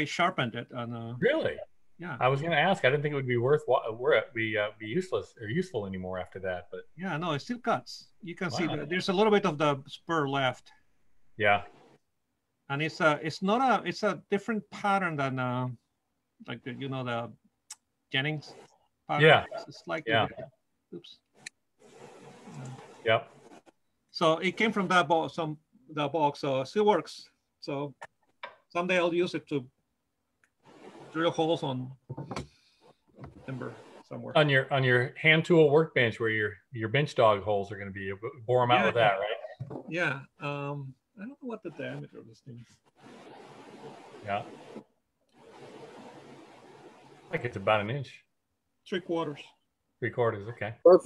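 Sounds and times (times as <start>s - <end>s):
faint room noise hiss: 0.0s - 28.1s, 33.2s - 51.0s.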